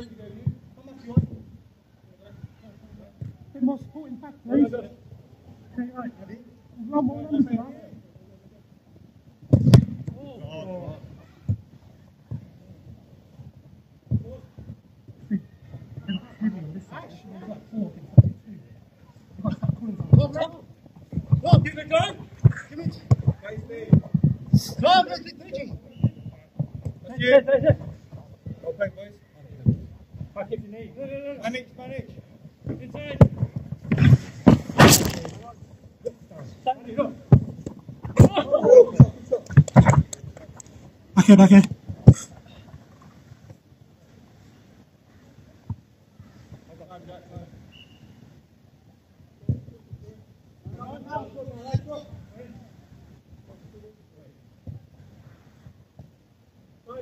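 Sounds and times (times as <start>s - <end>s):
football being kicked: 9.5s - 10.2s, 32.7s - 35.4s
players calling out: 38.0s - 40.5s.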